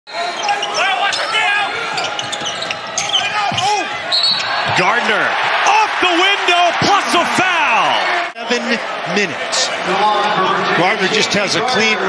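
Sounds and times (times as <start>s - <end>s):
arena crowd noise: 0.1s - 12.0s
shoes squeaking on hardwood: 0.4s - 4.8s.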